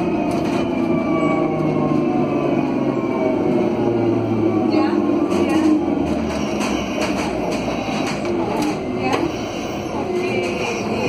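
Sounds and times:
bus rolling and road rumble: 0.0 - 11.0
faint passenger voices: 3.6 - 11.0.

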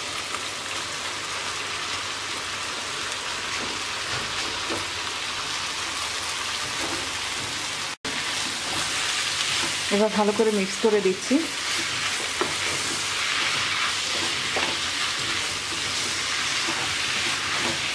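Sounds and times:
food sizzling in hot oil: 0.0 - 17.9.

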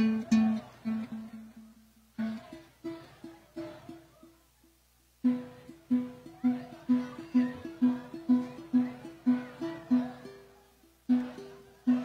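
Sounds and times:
string band playing: 0.0 - 4.0, 5.3 - 12.0.

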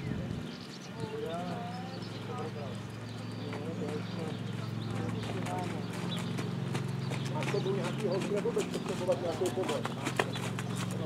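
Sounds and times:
indistinct voices talking: 0.0 - 11.0
horse hoofbeats on sand: 3.4 - 11.0.

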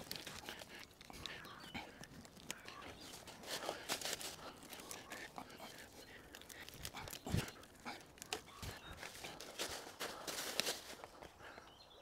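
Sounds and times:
branches and dry leaves rustling: 0.0 - 12.0.

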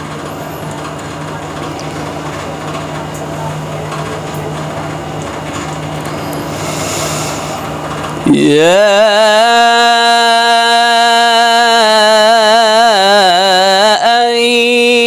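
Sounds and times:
room noise hiss: 5.9 - 9.1.

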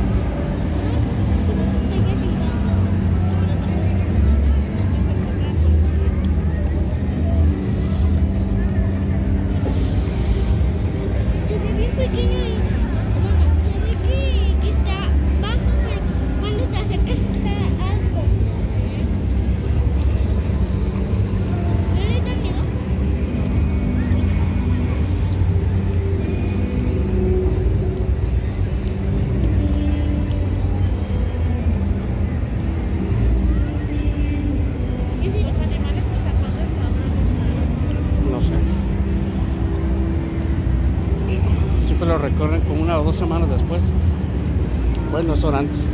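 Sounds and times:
music: 0.0 - 45.9
scattered voices: 0.0 - 45.9.

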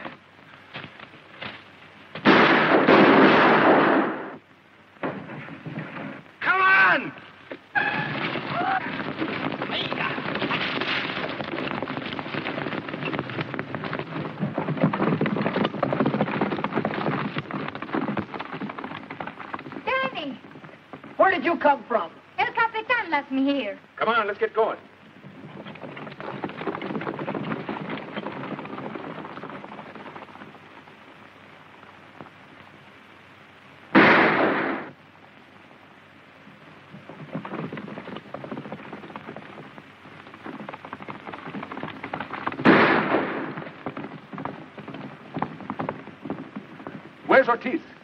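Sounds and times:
horses galloping: 0.0 - 48.0
loud gunshots: 2.2 - 4.4, 33.9 - 34.9, 42.6 - 43.6.

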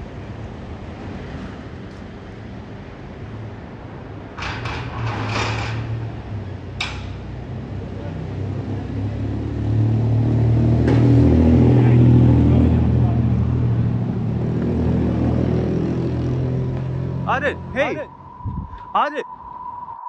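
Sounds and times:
vehicle engine humming: 5.8 - 19.5.

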